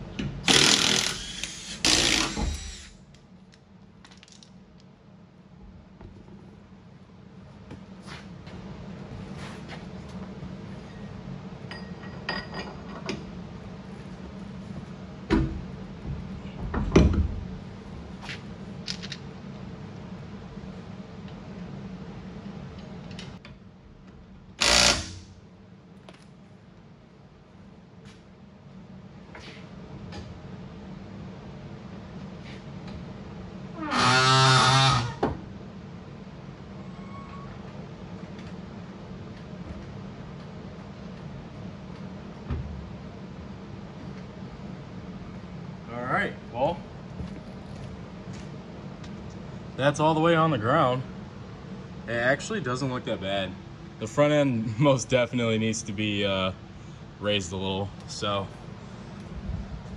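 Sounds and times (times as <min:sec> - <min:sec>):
steady low hum: 0:00.0 - 0:59.9
impact wrench bursts: 0:00.4 - 0:03.0, 0:24.6 - 0:25.3.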